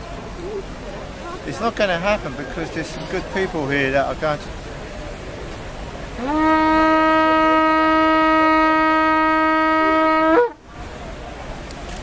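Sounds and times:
faint background noise: 0.0s - 12.0s
shofar blast: 6.2s - 10.6s.

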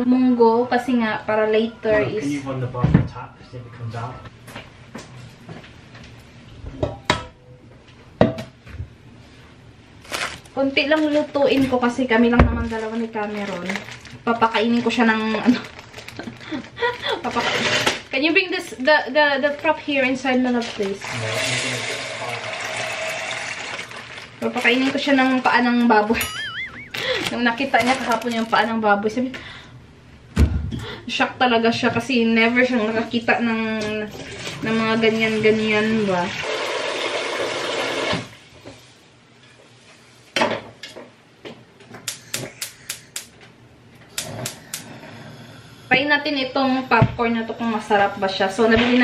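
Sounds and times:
dried pulses pouring into metal pot: 21.0s - 25.0s
tap water running: 21.0s - 25.3s, 34.3s - 38.4s
spark igniter clicking: 44.1s - 44.8s.

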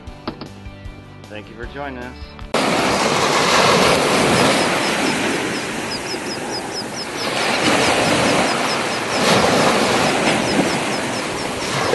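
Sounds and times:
boat engine: 2.6s - 11.9s
water rushing past boat: 2.6s - 11.9s.

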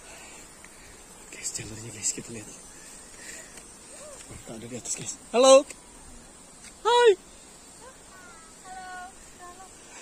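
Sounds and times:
faint drawn-out high calls: 6.8s - 10.0s.

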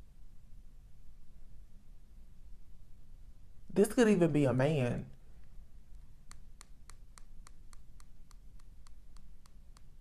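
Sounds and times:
low steady room hum: 0.0s - 10.0s.

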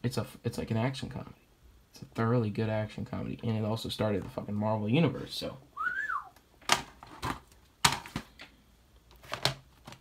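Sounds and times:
plastic cases clacking: 6.6s - 10.0s.

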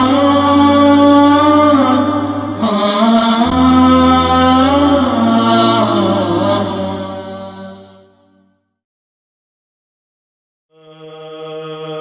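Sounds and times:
low drone: 0.0s - 8.2s
voice chanting held notes: 0.0s - 8.2s.

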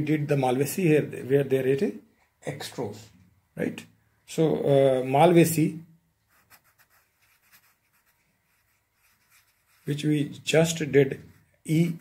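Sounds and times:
pencil scratching on paper: 6.3s - 10.1s, 11.0s - 12.0s.

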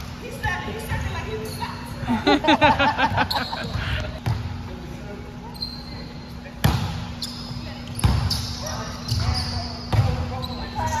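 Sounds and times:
shoe squeaks: 0.8s - 2.0s, 3.2s - 4.0s, 5.4s - 11.0s.

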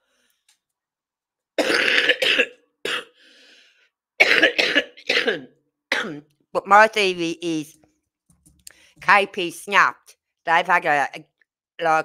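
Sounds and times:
person coughing: 1.6s - 3.2s, 4.2s - 6.2s
faint breath in: 3.2s - 3.9s.

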